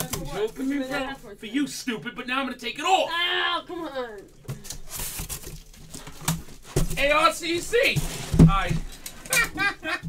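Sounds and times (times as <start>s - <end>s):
man talking: 6.9s - 10.0s.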